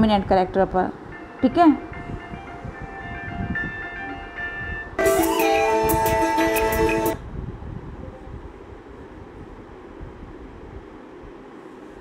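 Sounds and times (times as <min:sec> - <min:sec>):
electronic melody of steady tones: 0:01.2 - 0:07.2
phone ringtone: 0:02.0 - 0:07.2.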